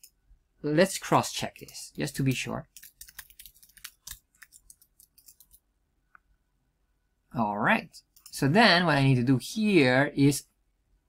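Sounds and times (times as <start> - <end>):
typing on computer keyboard: 2.7 - 5.6.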